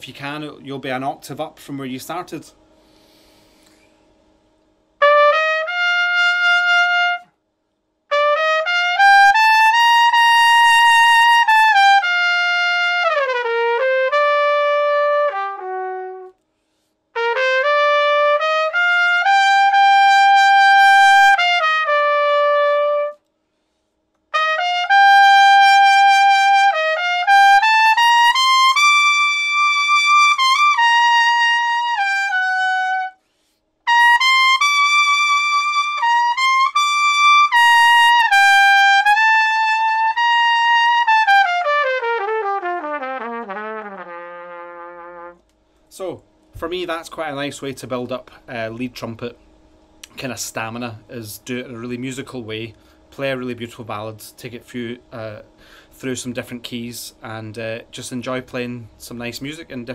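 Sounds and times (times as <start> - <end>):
solo trumpet ballad melody: 5.0 - 7.4, 8.1 - 16.5, 17.1 - 23.3, 24.3 - 45.7.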